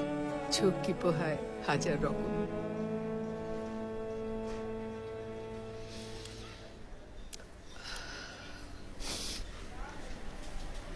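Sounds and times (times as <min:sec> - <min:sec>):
sharp breath through the nose: 0:07.7 - 0:09.6.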